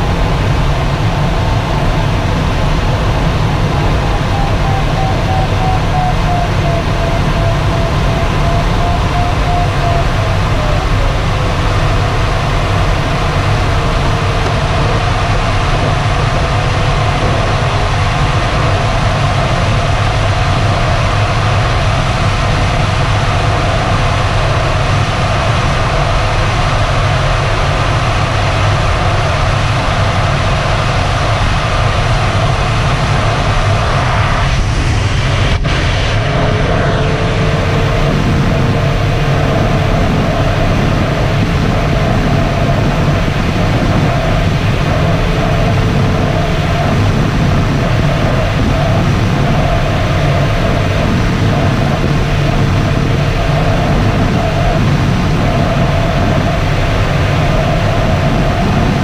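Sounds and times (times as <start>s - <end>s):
rushing airflow in cockpit: 0.0s - 59.0s.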